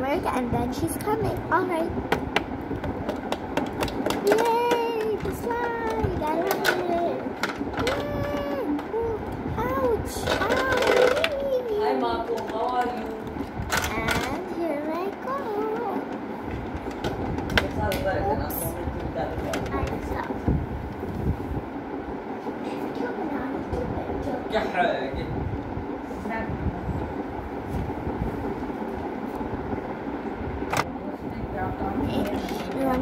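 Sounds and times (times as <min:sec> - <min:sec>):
plastic dolls clicking and tapping: 0:03.0 - 0:09.0, 0:10.2 - 0:11.8
child making sing-song sounds: 0:04.2 - 0:12.0, 0:13.8 - 0:16.0.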